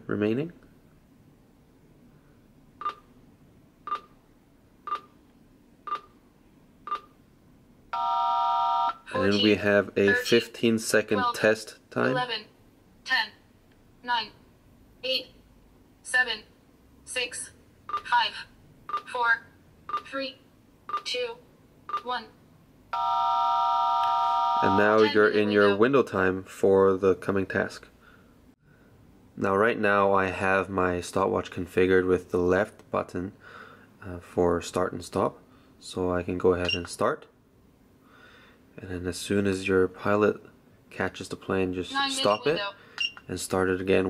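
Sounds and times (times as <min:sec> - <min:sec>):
timer beeping: 0:02.8 - 0:03.1, 0:03.9 - 0:04.1, 0:04.9 - 0:05.1, 0:05.9 - 0:06.1, 0:06.9 - 0:07.1, 0:20.9 - 0:21.1, 0:21.9 - 0:22.1, 0:42.2 - 0:43.2
voice calling numbers: 0:08.9 - 0:10.5, 0:17.2 - 0:22.4, 0:24.3 - 0:25.8, 0:41.9 - 0:42.8
short beeps: 0:42.2 - 0:43.2.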